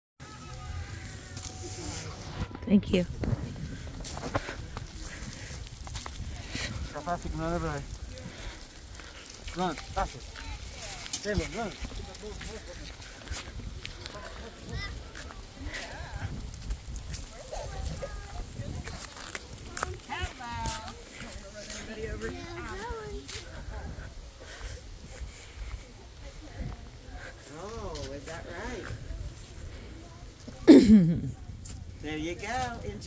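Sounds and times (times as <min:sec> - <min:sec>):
wind rumble: 0:00.4 - 0:30.4
microphone handling noise: 0:01.0 - 0:06.9.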